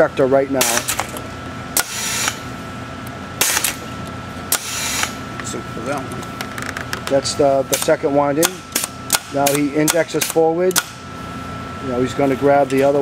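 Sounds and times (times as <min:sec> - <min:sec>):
steady high machine hum: 0:00.0 - 0:13.0
pneumatic hissing strokes: 0:01.8 - 0:02.4, 0:03.4 - 0:03.8, 0:04.5 - 0:05.2
sharp click: 0:07.7 - 0:11.0.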